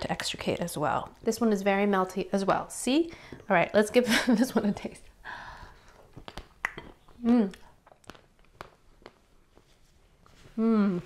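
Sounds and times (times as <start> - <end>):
chewing crunchy ice cream bar: 6.0 - 9.3.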